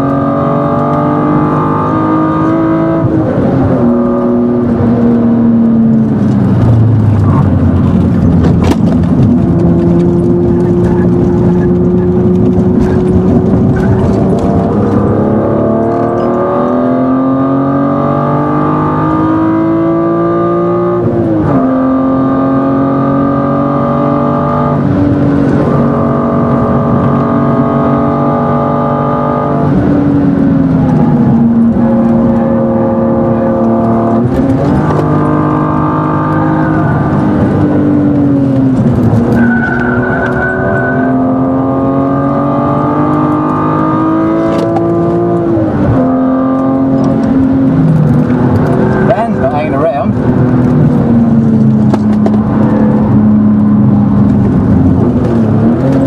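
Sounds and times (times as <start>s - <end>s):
car engine at full throttle: 0.0s - 56.0s
tyre squeal: 39.2s - 41.5s.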